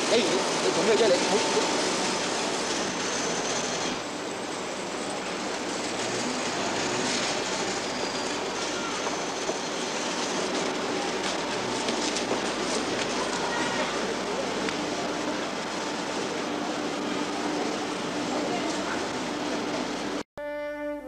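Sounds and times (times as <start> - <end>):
busy street and building site rumble: 0.0 - 20.2.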